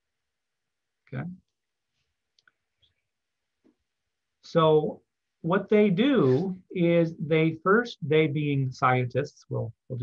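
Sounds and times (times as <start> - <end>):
man speaking: 4.4 - 10.0.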